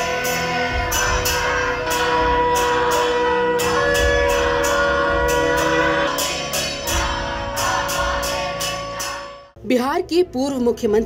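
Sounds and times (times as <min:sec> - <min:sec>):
brass percussion struck: 0:00.0 - 0:09.6.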